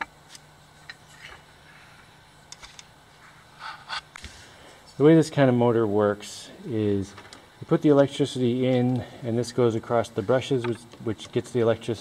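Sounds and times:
low steady hum: 0.0 - 12.0
small scraping sounds: 0.9 - 1.9.

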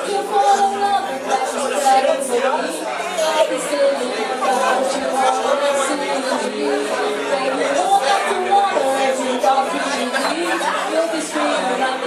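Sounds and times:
chatter of many voices: 0.0 - 12.0.

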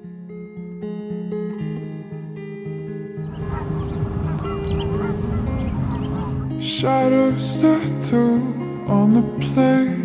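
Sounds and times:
soft background music: 0.3 - 10.0
geese honking: 3.2 - 6.6
sung vocals: 6.0 - 10.0.

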